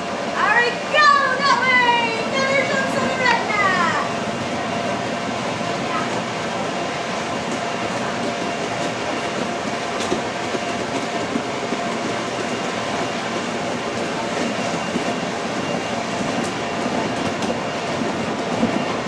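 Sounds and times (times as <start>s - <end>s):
blower rumbling and whooshing: 0.0s - 19.0s.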